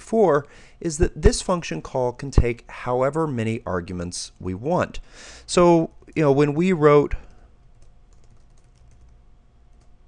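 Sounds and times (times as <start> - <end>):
keyboard typing: 7.2 - 10.0.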